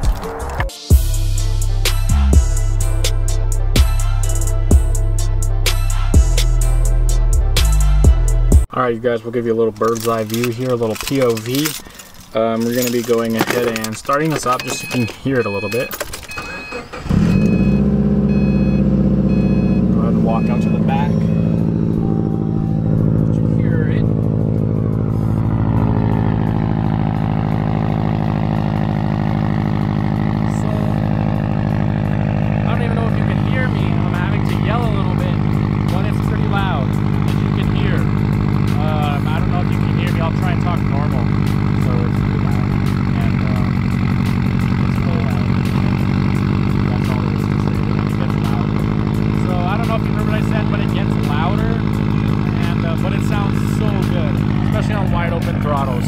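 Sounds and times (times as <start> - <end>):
car engine idling: 8.6 - 56.0.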